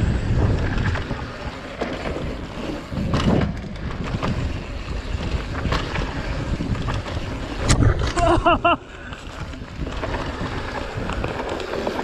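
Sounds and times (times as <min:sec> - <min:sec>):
sharp clacks from bike: 0:00.0 - 0:08.4, 0:09.0 - 0:12.0
wind buffeting microphone: 0:00.0 - 0:08.5
bike tyre and drivetrain rattle: 0:00.0 - 0:12.0.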